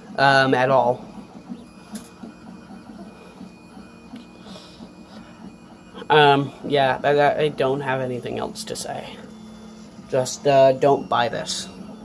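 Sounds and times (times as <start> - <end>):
printer motor humming tones: 0.0 - 12.0.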